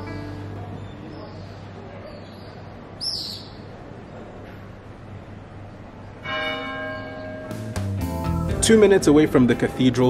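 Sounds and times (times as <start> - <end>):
church bell ringing: 6.2 - 9.5.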